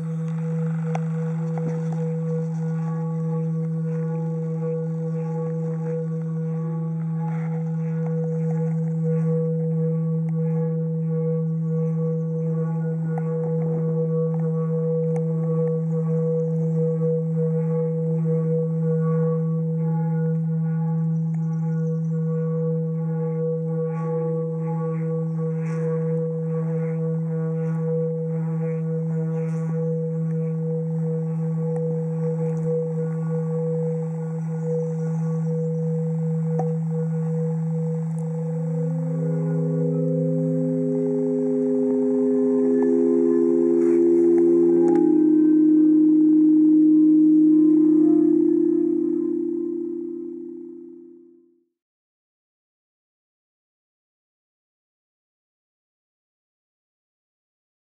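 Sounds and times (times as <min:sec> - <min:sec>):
sound stone ringing hum: 0:00.0 - 0:51.7.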